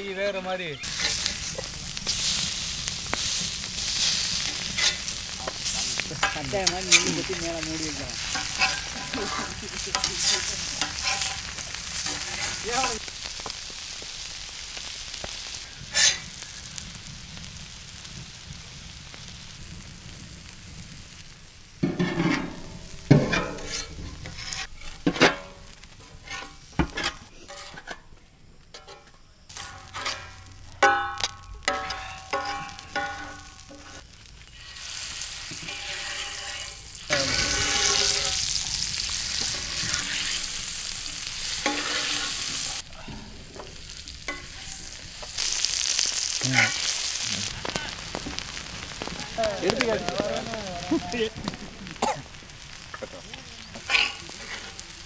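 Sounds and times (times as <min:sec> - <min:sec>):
food sizzling in hot oil: 0:00.0 - 0:27.9, 0:29.4 - 0:55.0.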